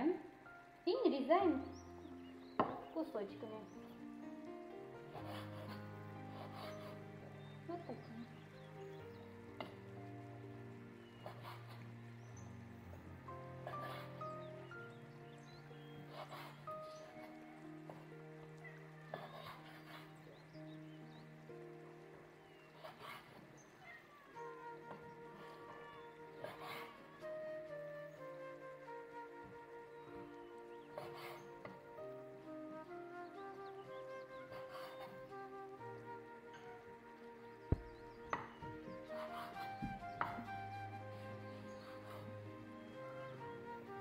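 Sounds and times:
quiet background music: 0.0 - 44.0.

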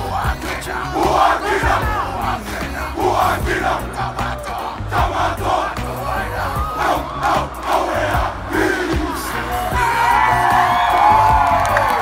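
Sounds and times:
group shouting a chant in unison: 0.0 - 12.0
crowd cheering and whooping: 3.8 - 5.5, 6.4 - 12.0.

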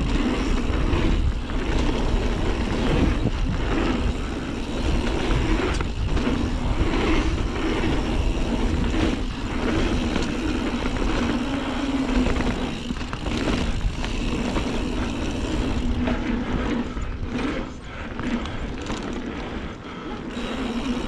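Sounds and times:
bike tyre noise on dirt: 0.0 - 21.0
wind buffeting microphone: 0.0 - 21.0.

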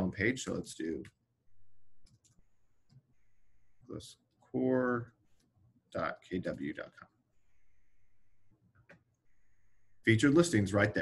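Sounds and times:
faint low hum: 0.0 - 11.0
computer keys clicking: 1.8 - 3.1.

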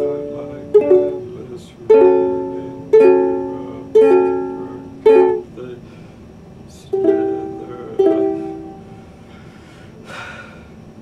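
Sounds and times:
ukulele chords strummed: 0.0 - 5.7, 6.9 - 9.0.

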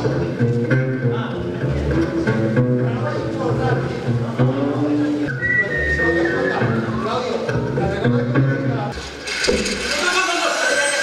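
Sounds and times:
double bass low notes: 0.0 - 9.2
high whistled note: 5.2 - 7.5.

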